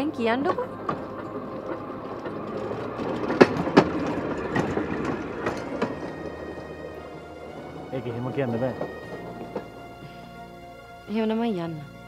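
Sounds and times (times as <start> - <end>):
train rumbling on rails: 0.0 - 12.0
wheels clacking over rail joints: 0.0 - 12.0.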